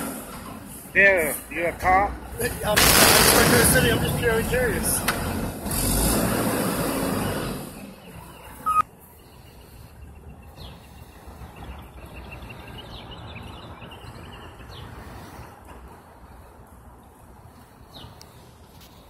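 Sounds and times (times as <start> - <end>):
street background: 0.0 - 19.0
short beep: 8.6 - 8.8.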